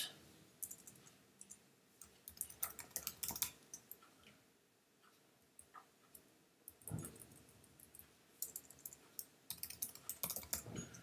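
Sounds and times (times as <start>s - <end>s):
typing on computer keyboard: 0.6s - 4.1s, 5.6s - 11.0s.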